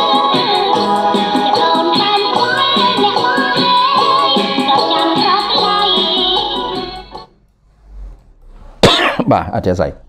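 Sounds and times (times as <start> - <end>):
man coughing: 8.8 - 9.5.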